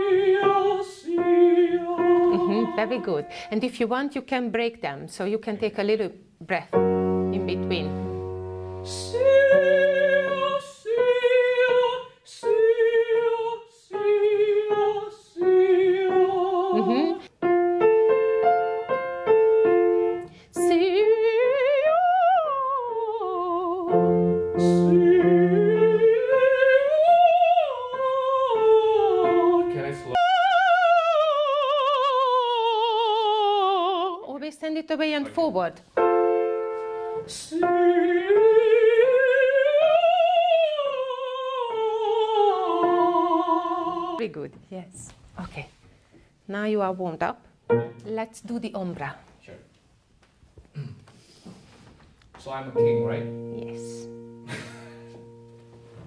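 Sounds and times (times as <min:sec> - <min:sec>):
countertenor singing vocal exercises: 0:00.0 - 0:03.8, 0:08.7 - 0:17.3, 0:20.2 - 0:34.4, 0:37.1 - 0:44.2
grand piano chords: 0:00.0 - 0:03.8, 0:06.7 - 0:10.5, 0:15.5 - 0:21.2, 0:23.5 - 0:27.0, 0:36.0 - 0:38.4, 0:47.6 - 0:48.4, 0:52.7 - 0:56.0.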